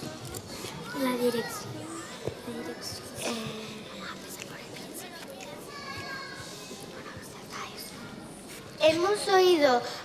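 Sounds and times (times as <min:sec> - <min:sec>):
faint children's voices: 0:00.0 - 0:10.0.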